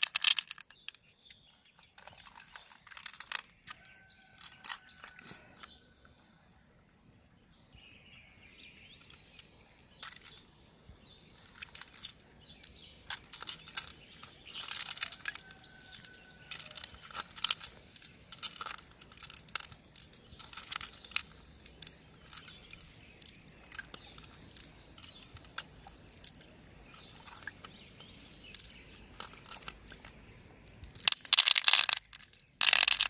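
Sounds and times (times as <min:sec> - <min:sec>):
beads clicking together: 0:00.0 - 0:01.0, 0:09.0 - 0:10.5, 0:11.4 - 0:27.6, 0:28.4 - 0:29.8, 0:30.6 - 0:33.0
wet clicks and squelches: 0:00.0 - 0:05.8, 0:09.0 - 0:10.5, 0:11.4 - 0:33.0.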